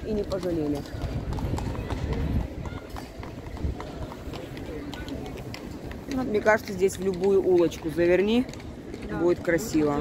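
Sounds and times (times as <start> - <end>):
horse hooves on cobblestones: 0.0 - 10.0.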